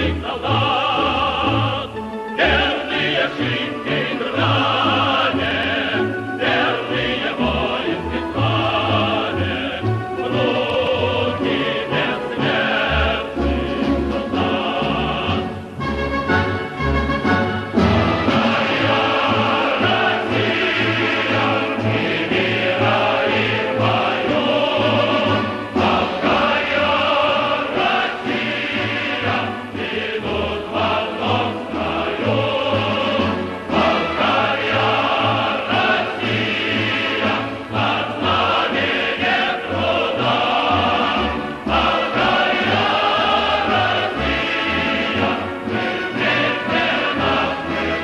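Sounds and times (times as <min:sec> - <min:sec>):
choir singing with accompaniment: 0:00.0 - 0:48.0.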